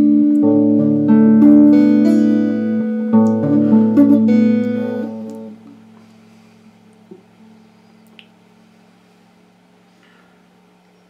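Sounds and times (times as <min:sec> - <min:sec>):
electric guitar amplifier hum: 0:00.0 - 0:10.3
fingers scraping guitar strings: 0:03.2 - 0:05.6.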